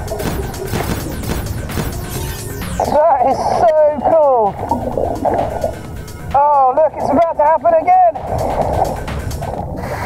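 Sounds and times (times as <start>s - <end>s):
exhaled bubbles gurgling underwater: 3.3s - 6.0s
breath hissing through regulator: 9.7s - 10.0s.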